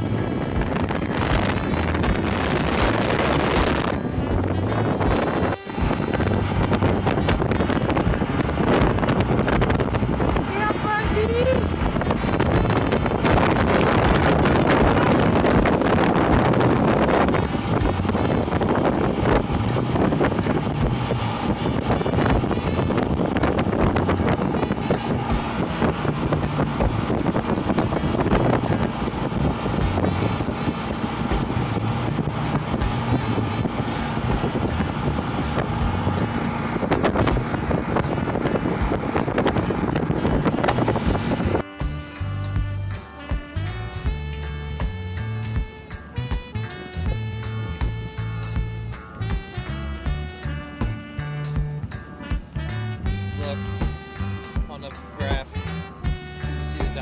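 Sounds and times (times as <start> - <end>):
background music: 0.0 - 57.0
motorboat engine running: 0.0 - 57.0
wind on microphone: 0.0 - 57.0.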